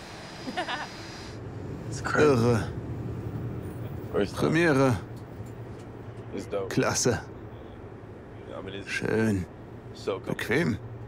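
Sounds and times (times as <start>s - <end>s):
jet cabin hum: 0.0s - 10.1s.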